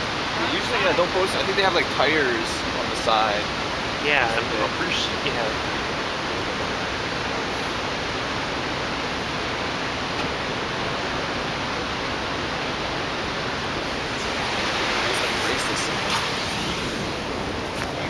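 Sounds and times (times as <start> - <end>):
rushing water: 0.0 - 18.0.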